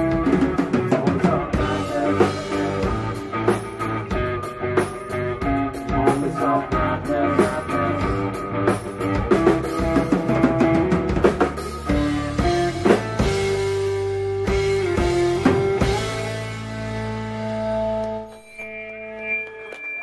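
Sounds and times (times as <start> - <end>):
drum kit with bass drum: 0.0 - 17.5
bass guitar: 0.0 - 20.0
electric guitar: 0.0 - 20.0.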